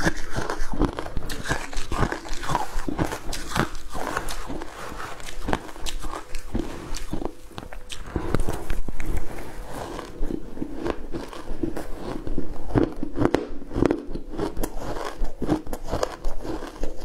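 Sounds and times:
crushed ice being chewed: 0.0s - 17.0s.

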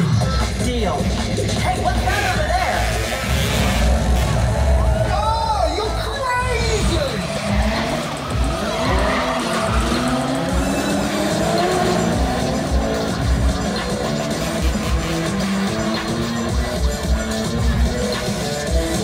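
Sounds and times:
engines revving: 0.0s - 19.0s
loud music with bass beat: 0.0s - 19.0s
tyres squealing: 5.7s - 19.0s.

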